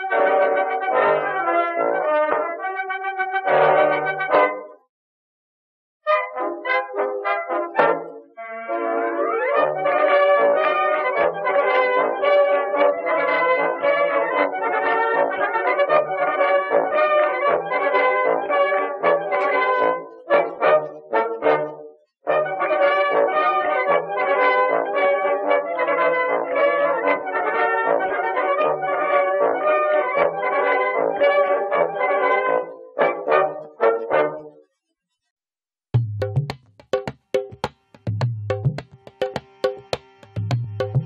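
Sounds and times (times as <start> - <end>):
instrumental music with brass: 0.0 - 4.8, 6.0 - 34.7, 36.0 - 41.0.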